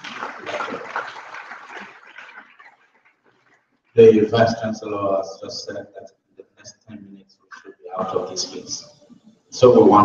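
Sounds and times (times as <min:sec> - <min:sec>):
audience applauding: 0:00.0 - 0:03.6.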